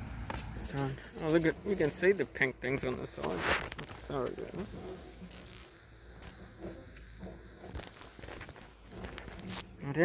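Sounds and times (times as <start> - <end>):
footsteps on a boardwalk: 0.1 - 10.0.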